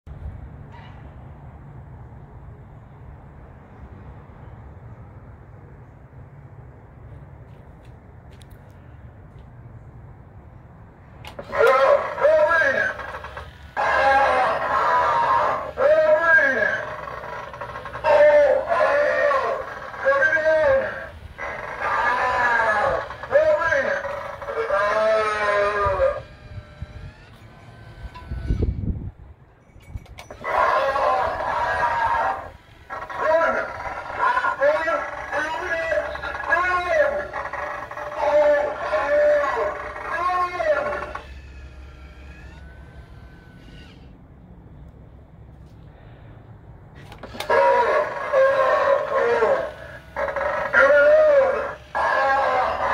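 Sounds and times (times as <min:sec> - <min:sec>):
prop scream through speaker: 0:11.3 - 0:28.8, 0:30.3 - 0:44.1, 0:47.2 - 0:52.9
motor whine: 0:11.3 - 0:29.1, 0:30.2 - 0:44.9, 0:47.0 - 0:52.9
wavering wail: 0:11.4 - 0:28.4, 0:30.3 - 0:44.0, 0:47.2 - 0:52.9.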